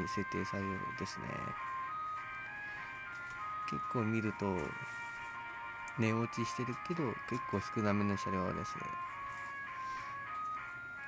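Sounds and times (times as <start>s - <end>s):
person speaking: 0.0s - 1.6s, 3.6s - 4.9s, 5.9s - 9.1s
electronic tones music: 0.0s - 11.0s.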